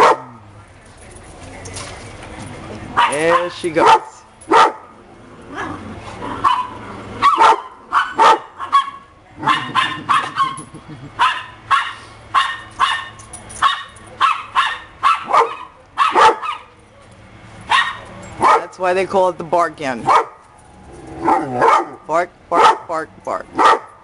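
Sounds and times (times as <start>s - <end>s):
dogs barking sharply: 0.0s - 0.4s, 3.0s - 5.0s, 5.6s - 16.7s, 17.7s - 18.7s, 20.0s - 20.5s, 21.2s - 22.9s, 23.5s - 24.0s.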